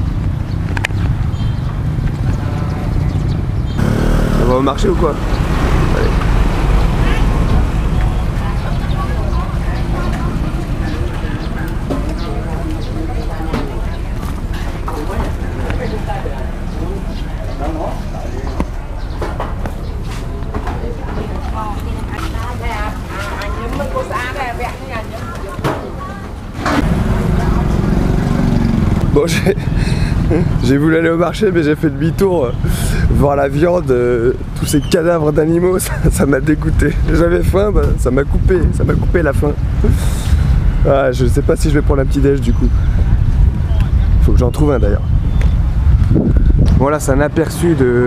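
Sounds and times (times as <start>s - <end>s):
vehicle engine droning: 3.7s - 21.2s, 26.7s - 30.8s
faint voices: 3.8s - 31.4s.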